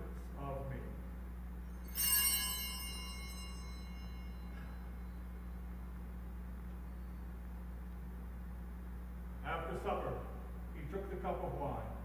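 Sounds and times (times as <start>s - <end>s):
altar bell ringing: 1.7s - 5.6s.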